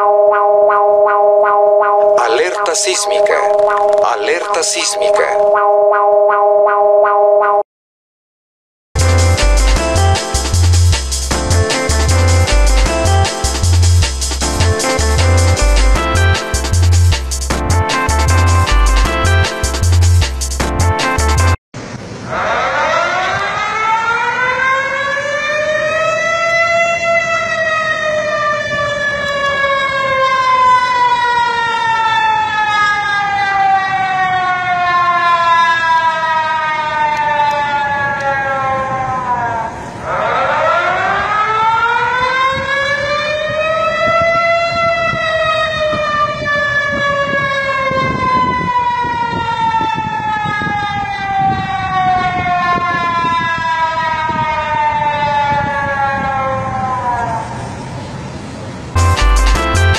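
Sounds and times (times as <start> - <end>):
warning siren wailing: 0.0 - 7.6, 22.3 - 57.9.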